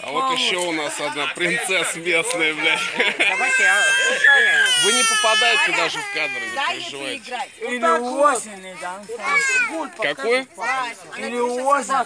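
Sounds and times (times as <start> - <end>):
men talking: 0.0 - 12.0
person crying in a high wail: 2.6 - 6.7.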